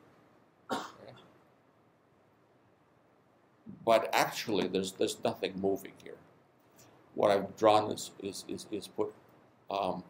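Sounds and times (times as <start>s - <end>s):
man coughing: 0.7s - 1.2s.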